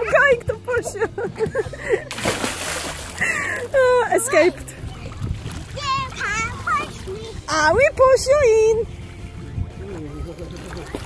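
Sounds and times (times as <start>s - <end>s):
body splashing into water: 2.0s - 3.8s.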